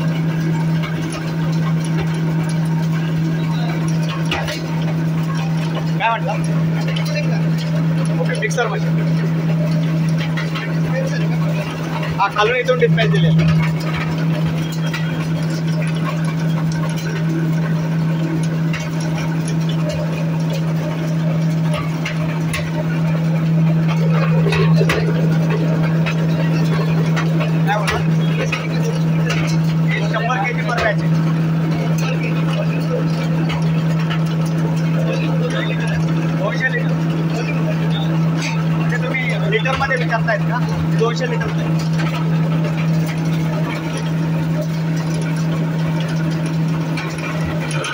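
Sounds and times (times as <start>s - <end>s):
crackling: 0.0s - 47.9s
shredder machine droning: 0.0s - 47.9s.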